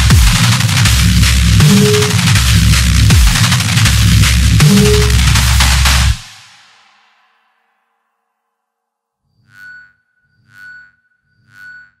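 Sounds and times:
low bass: 0.0s - 6.2s
high synth tone: 9.4s - 12.0s.

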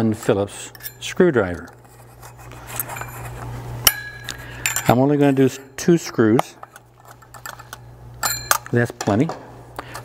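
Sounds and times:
light metallic rubbing: 0.7s - 8.5s.

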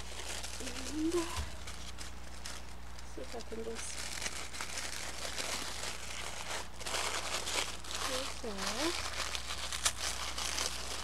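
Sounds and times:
tissue paper crinkling: 0.0s - 11.0s.

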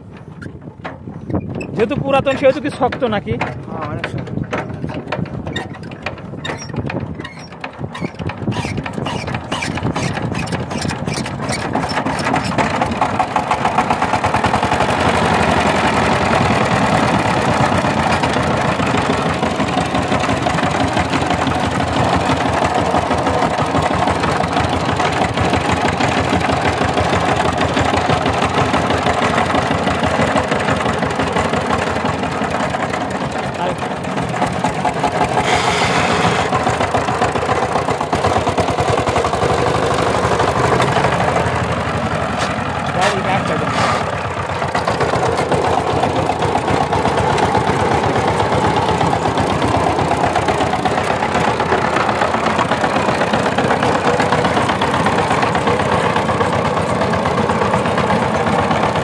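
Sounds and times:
diesel engine chugging: 0.0s - 59.0s.

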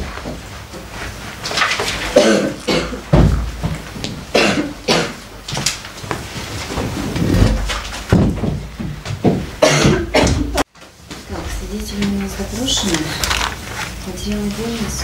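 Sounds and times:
rustles and bumps: 5.5s - 9.6s.

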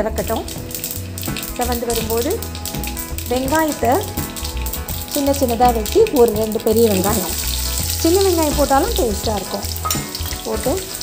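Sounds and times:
onions sizzling in a frying pan: 0.2s - 11.0s.

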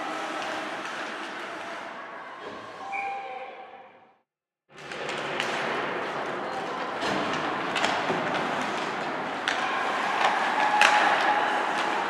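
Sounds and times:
skates scraping ice: 0.0s - 2.8s, 4.8s - 12.0s.

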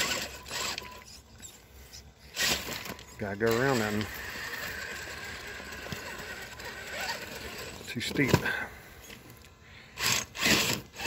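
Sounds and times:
electric motor whining: 0.0s - 1.6s, 2.3s - 8.4s, 9.9s - 11.0s.

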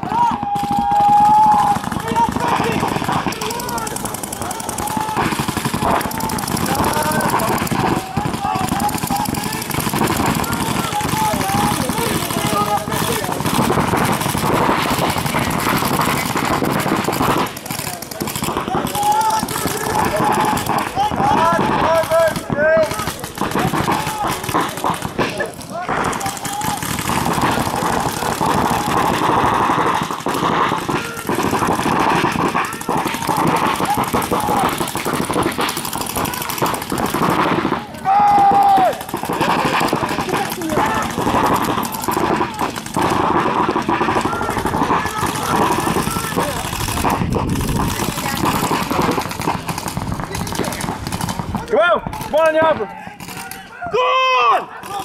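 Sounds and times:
loud shouted call: 0.0s - 47.3s, 51.6s - 55.0s
paintball markers firing: 0.0s - 53.8s, 54.6s - 55.0s
people shouting: 0.0s - 55.0s.

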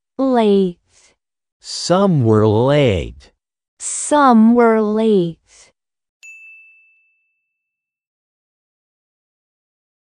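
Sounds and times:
ding chime: 6.2s - 8.1s.

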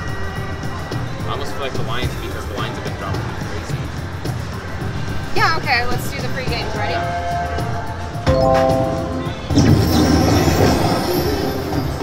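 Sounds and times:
slot machine game music: 8.2s - 12.0s.

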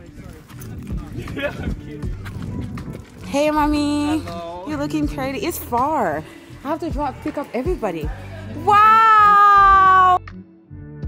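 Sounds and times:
background chatter: 0.0s - 9.0s
footsteps on hard floor: 0.4s - 4.0s.

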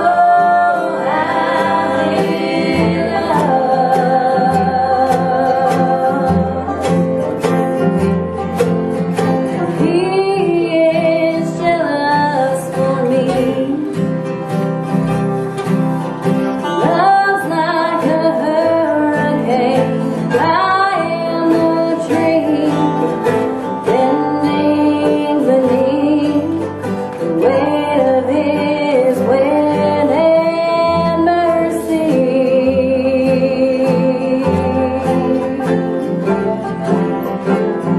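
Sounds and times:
woman singing: 0.0s - 7.2s, 9.4s - 14.0s, 16.6s - 37.1s
bluegrass band playing: 0.0s - 37.9s.

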